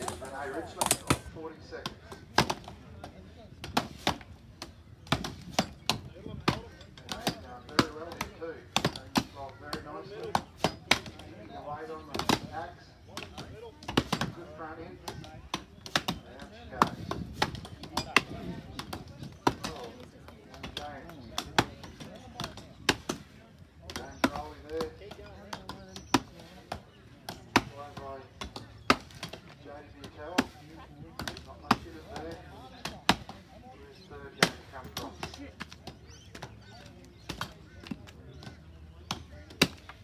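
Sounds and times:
axes chopping into logs: 1.9 - 2.8, 3.6 - 11.2, 13.2 - 14.4, 15.1 - 20.0, 25.5 - 30.6, 31.2 - 33.4.

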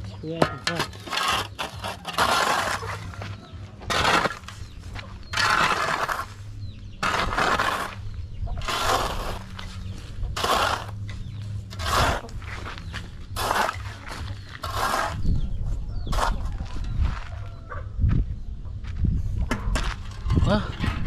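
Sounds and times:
metal spade scraping soil: 0.0 - 17.4, 19.5 - 21.0.

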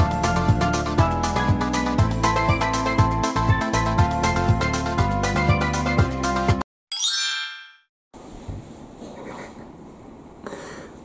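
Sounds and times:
bright chime: 6.9 - 7.9.

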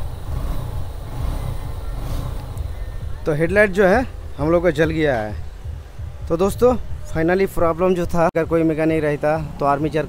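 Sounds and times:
motorcycle engine idling: 0.0 - 7.4.

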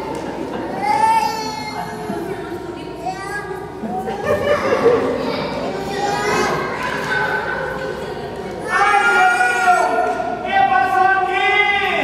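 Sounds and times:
child speaking: 3.0 - 3.7, 4.4 - 7.6.

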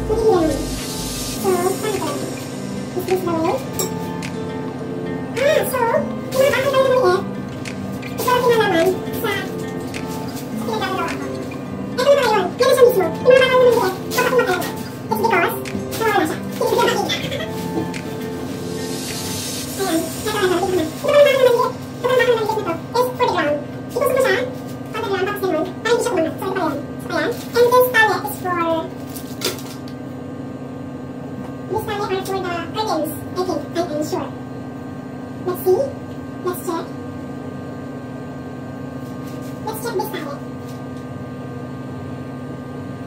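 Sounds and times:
person speaking: 0.0 - 4.4, 5.2 - 28.0
person talking: 0.0 - 4.4, 5.3 - 7.4, 8.2 - 28.9, 39.6 - 40.4
faint high steady tones: 0.0 - 6.8
background music: 0.0 - 23.5
electrical hum: 0.0 - 43.0.

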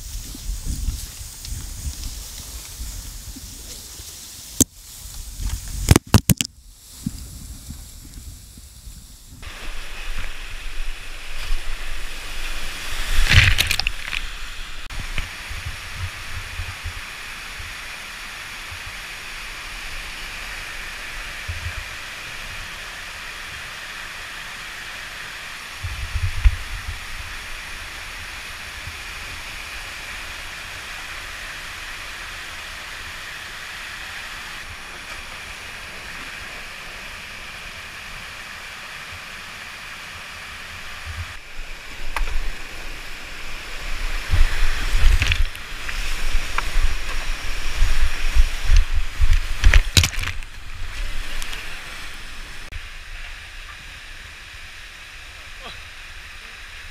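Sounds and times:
wind buffeting microphone: 0.0 - 17.8, 25.8 - 29.7, 40.9 - 53.1
whitewater rushing: 9.4 - 56.9.

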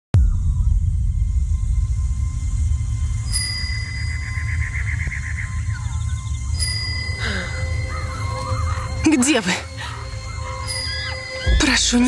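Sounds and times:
deep low rumble: 0.2 - 12.0
high ringing tones: 2.0 - 9.2.

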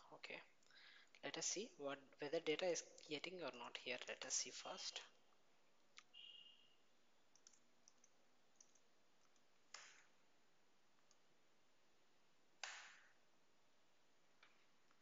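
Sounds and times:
computer mouse clicks: 7.3 - 10.1.

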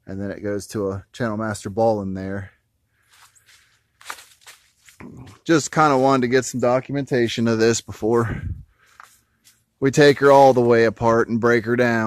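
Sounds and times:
footsteps crunching on dry leaves: 3.1 - 5.0.

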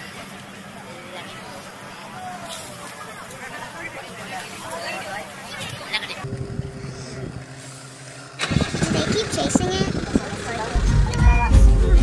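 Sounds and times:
people talking: 0.0 - 6.3, 8.4 - 12.0
vehicle engine running: 6.1 - 12.0
deep rumble: 6.2 - 12.0.

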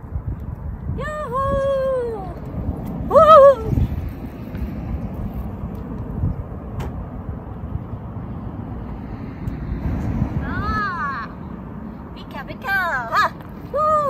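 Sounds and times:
wind noise on microphone: 0.0 - 12.8
road traffic rumble: 0.0 - 14.0.

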